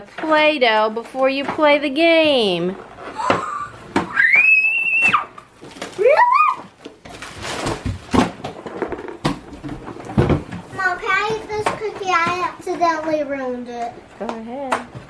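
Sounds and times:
child squealing: 0:03.2 - 0:05.4, 0:06.0 - 0:06.7
tissue paper rustling: 0:05.6 - 0:08.2.

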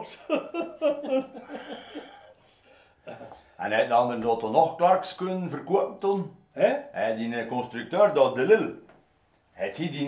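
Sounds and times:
man chuckling softly: 0:00.1 - 0:02.4.

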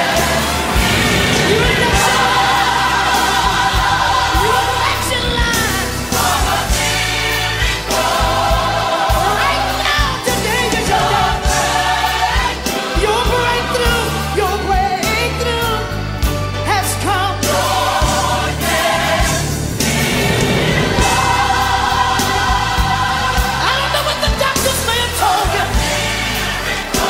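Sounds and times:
choir singing: 0:00.0 - 0:15.5, 0:16.7 - 0:27.0
lead voice singing: 0:00.0 - 0:15.9, 0:16.6 - 0:27.0
band with bass and drums: 0:00.0 - 0:27.0.

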